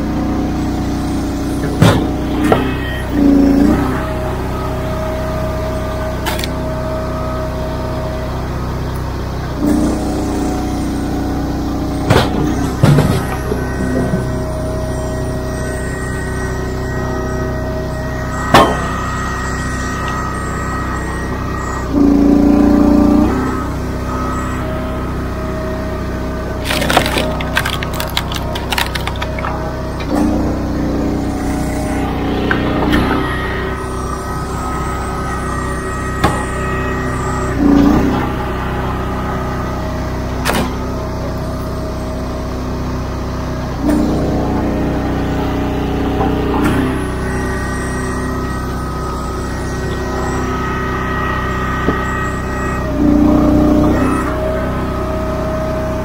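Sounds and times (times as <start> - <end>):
log splitter engine running: 0.0 - 56.0
wood splitting cracks: 26.6 - 29.6.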